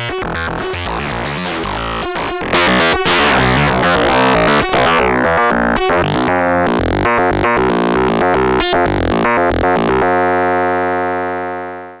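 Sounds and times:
buzzy synthesizer notes: 0.0 - 10.9.

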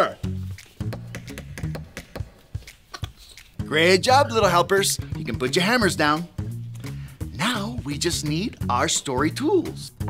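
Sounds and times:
light background music: 0.0 - 10.0
rapid hammer taps: 0.8 - 3.2.

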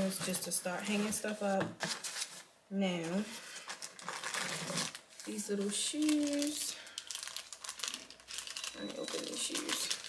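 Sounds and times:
plastic packaging crinkling: 3.1 - 10.0.

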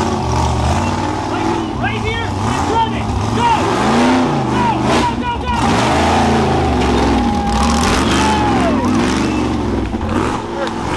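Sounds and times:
buggy engine revving hard: 0.0 - 10.9
spectators shouting: 1.9 - 10.9.

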